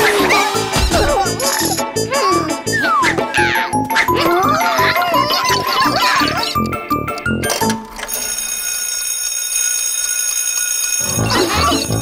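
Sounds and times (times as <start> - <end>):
alarm clock bell ringing: 1.4 - 1.9, 4.7 - 12.0.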